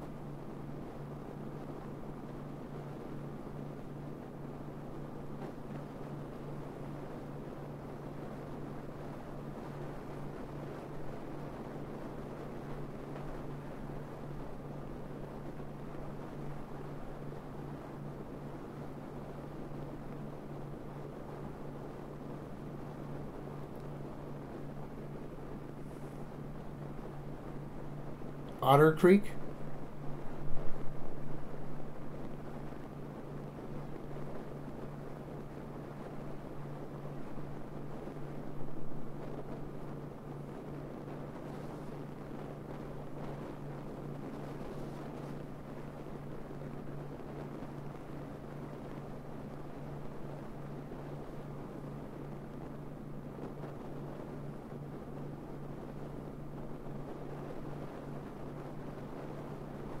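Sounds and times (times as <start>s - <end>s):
constant low hum: 0.0s - 60.0s.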